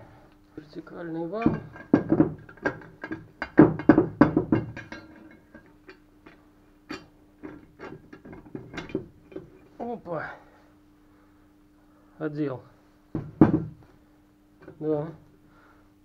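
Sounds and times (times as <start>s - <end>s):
faint steady hum: 0.0s - 16.0s
metal parts knocking and clicking: 1.3s - 9.7s.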